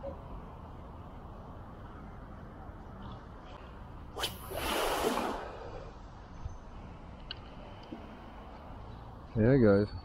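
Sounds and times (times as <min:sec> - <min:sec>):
line zipping off reel: 0:04.2 - 0:05.5
fishing rod swish: 0:04.2 - 0:05.6.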